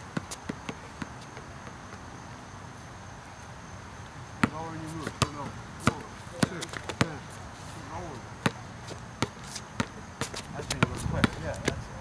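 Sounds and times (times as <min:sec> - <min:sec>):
basketball bouncing on asphalt: 0:00.0 - 0:02.3, 0:04.3 - 0:07.3, 0:08.3 - 0:11.9
high insect tone: 0:00.0 - 0:12.0.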